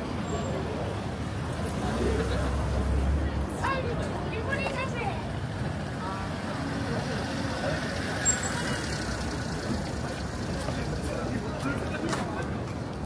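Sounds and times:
motor vehicle traffic: 0:00.0 - 0:13.0
passers-by talking: 0:00.0 - 0:13.0.

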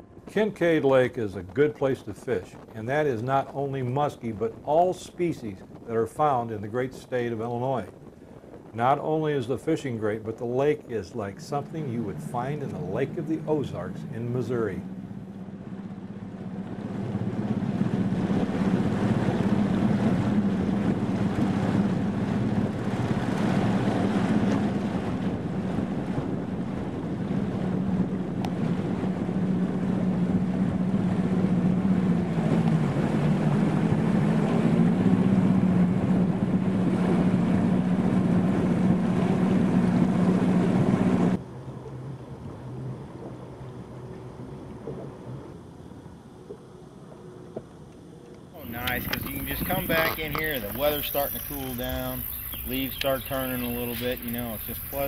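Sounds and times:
wind on microphone: 0:00.0 - 0:41.4, 0:48.6 - 0:55.0
rushing water: 0:07.8 - 0:26.0, 0:48.6 - 0:55.0
outboard motor running: 0:11.5 - 0:46.6, 0:48.6 - 0:55.0.

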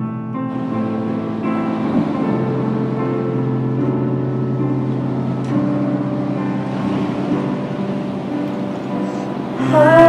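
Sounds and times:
electronic keyboard chords: 0:00.0 - 0:10.0.

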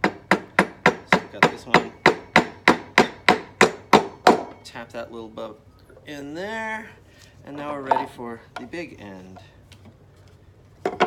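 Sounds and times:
hammer tapping nail into wood: 0:00.0 - 0:04.6.

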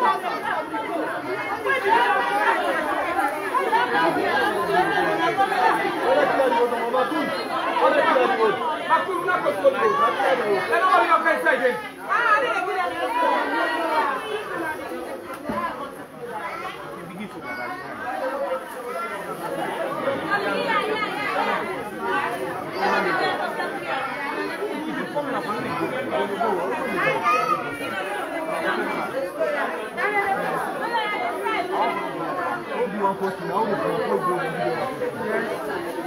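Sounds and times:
crowd chatter: 0:00.0 - 0:36.0.

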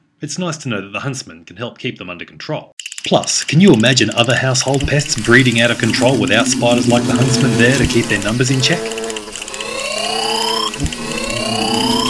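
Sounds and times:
whooping alarm siren: 0:05.7 - 0:12.0.

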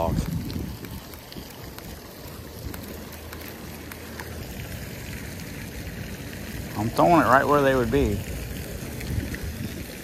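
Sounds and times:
wind rumbling on microphone: 0:00.0 - 0:03.4, 0:07.9 - 0:10.0
fountain spray splashing: 0:00.0 - 0:10.0.

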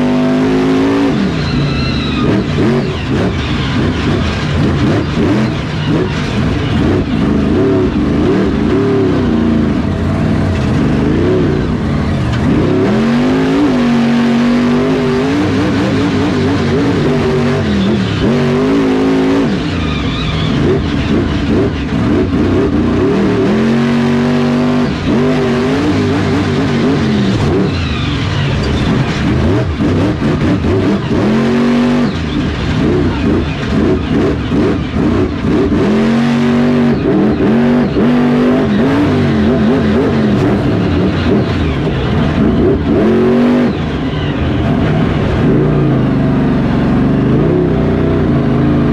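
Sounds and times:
truck engine revving: 0:00.0 - 0:48.9.

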